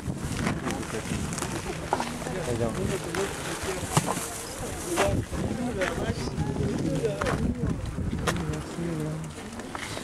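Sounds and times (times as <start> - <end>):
people talking indistinctly: 0.4 - 9.7.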